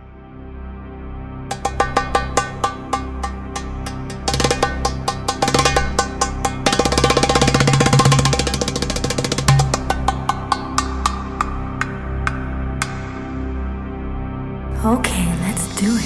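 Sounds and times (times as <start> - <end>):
darbuka drum strokes: 1.5 - 13.2
sustained low drone: 9.8 - 16.0.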